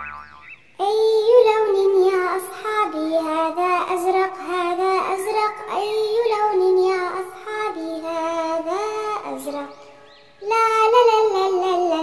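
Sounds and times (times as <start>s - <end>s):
child singing: 0.8s - 9.8s, 10.4s - 12.0s.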